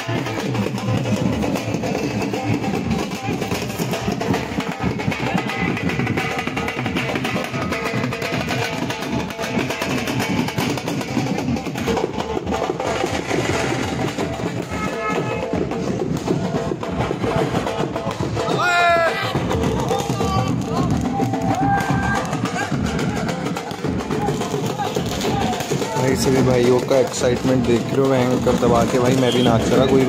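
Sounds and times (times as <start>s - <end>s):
drums beating quickly: 0.0s - 30.0s
loud dance band music: 14.4s - 26.0s.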